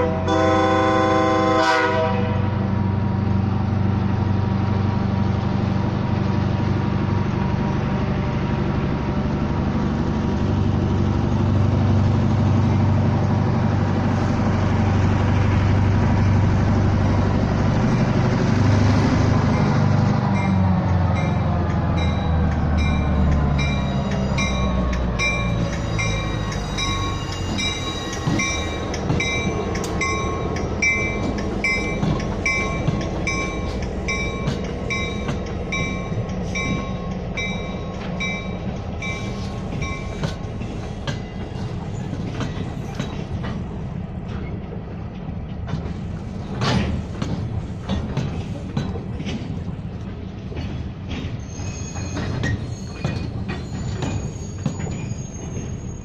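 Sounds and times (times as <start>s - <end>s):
diesel locomotive engine passing: 0.0s - 56.0s
train cars rolling on rails: 0.0s - 56.0s.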